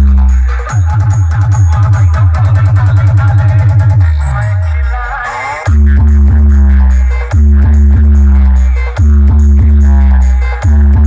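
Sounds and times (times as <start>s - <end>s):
electronic dance music: 0.0s - 11.0s
deep bass hits: 5.7s - 11.0s.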